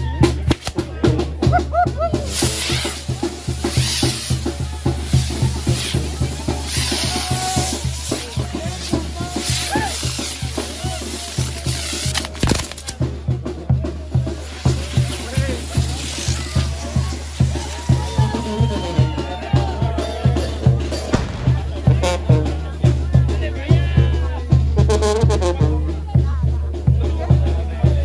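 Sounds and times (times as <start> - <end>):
brass band with tuba and drums: 0.0 - 28.0
fireworks hissing crackle: 0.3 - 23.2
sharp firework crack: 0.4 - 1.2, 2.3 - 13.2, 14.3 - 18.9, 21.0 - 22.7.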